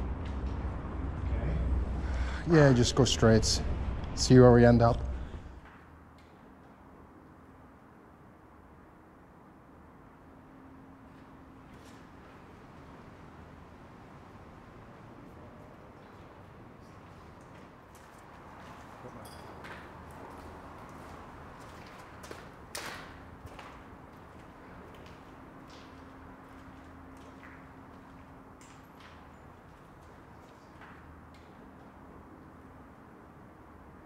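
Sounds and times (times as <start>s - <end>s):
low steady background noise: 0.0s - 34.0s.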